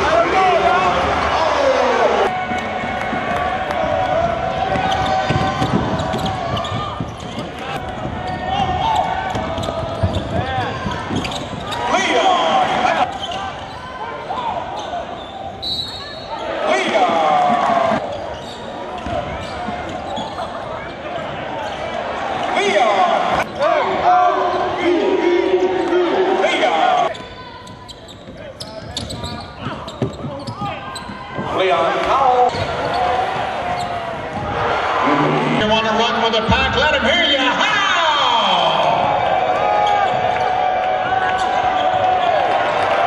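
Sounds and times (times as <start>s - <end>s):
indistinct voices echoing: 20.1s - 43.0s.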